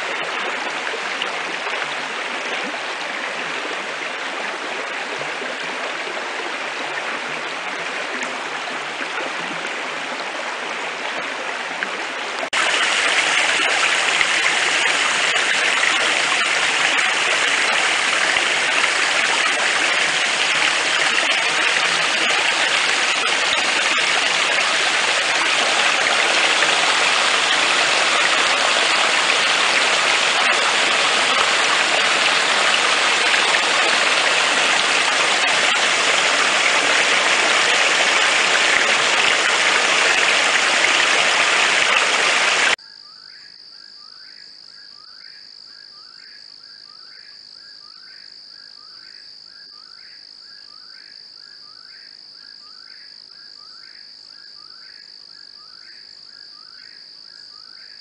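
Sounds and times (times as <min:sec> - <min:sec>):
stream water rushing: 0:00.0 - 0:42.8
insect chirps: 0:42.8 - 0:58.0.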